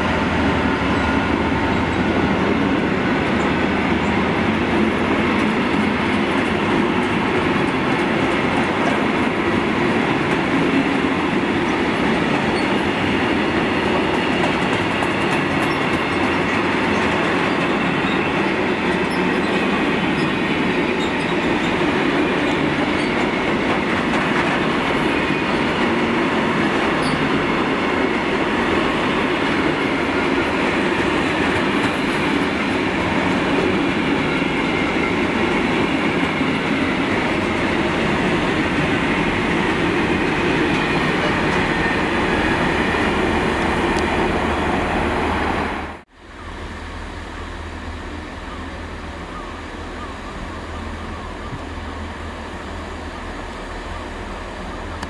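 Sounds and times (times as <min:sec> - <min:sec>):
freight train wheels rumbling: 0:00.0 - 0:55.0.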